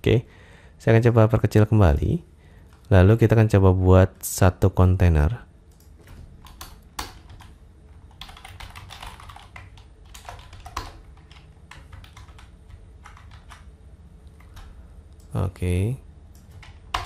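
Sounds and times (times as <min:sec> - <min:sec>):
typing on computer keyboard: 0:05.7 - 0:13.7, 0:16.4 - 0:17.0.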